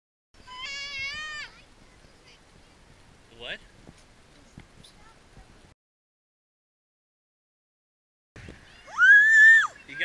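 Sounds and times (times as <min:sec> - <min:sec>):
child's high wavering cry: 0:00.4 - 0:01.6, 0:08.8 - 0:09.8.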